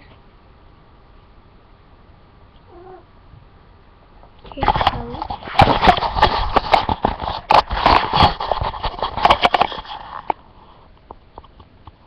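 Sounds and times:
faint cat meow: 2.6 - 3.1.

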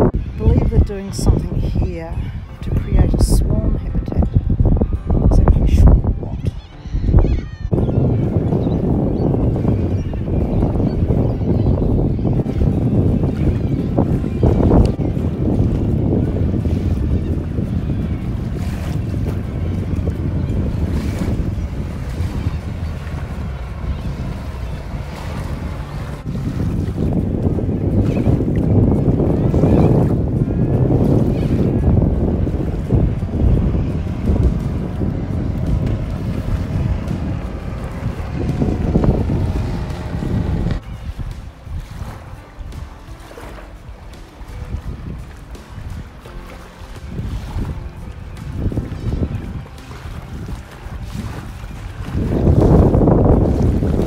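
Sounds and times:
wind rumbling on microphone: 0.0 - 54.0
distant jet ski engine: 6.6 - 54.0.

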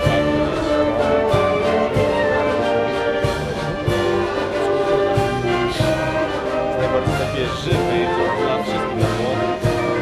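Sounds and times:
steady drum beat: 0.0 - 10.0
wind band playing a march: 0.0 - 10.0.

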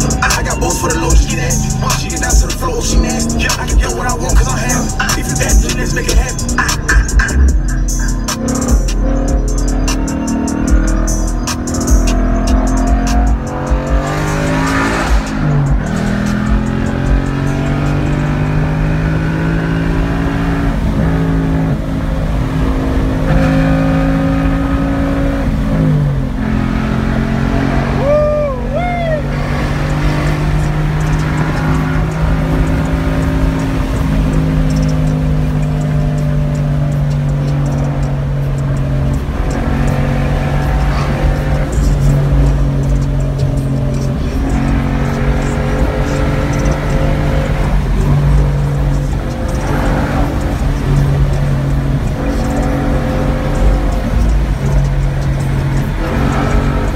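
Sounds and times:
car engine cruising from inside cabin: 0.0 - 56.9.

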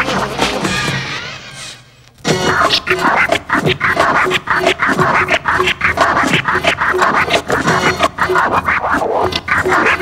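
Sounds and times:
turntable scratching: 0.0 - 10.0.

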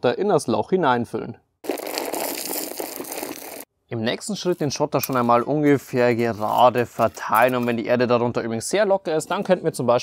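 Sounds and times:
gravel poured from bucket: 1.6 - 3.7.

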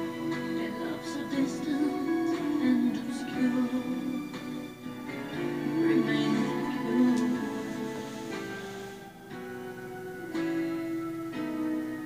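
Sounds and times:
acoustic guitar strumming chords: 0.0 - 12.0.

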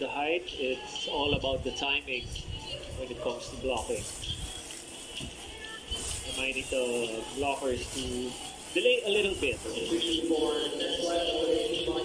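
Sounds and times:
commentator speaking: 0.0 - 2.3, 3.0 - 4.1, 6.3 - 12.0
distant voices: 0.0 - 12.0
faint music: 0.0 - 12.0
arena crowd noise: 4.8 - 12.0.

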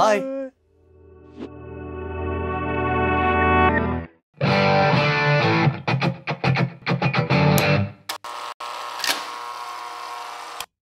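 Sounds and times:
electric guitar music: 3.1 - 8.1.

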